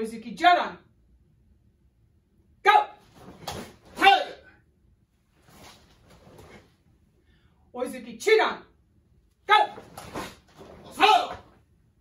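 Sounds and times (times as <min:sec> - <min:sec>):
person shouting a command: 0:02.6 - 0:03.0, 0:04.0 - 0:04.5, 0:09.5 - 0:09.9, 0:10.8 - 0:11.5
karate kiai shout: 0:02.6 - 0:04.6, 0:09.5 - 0:11.6.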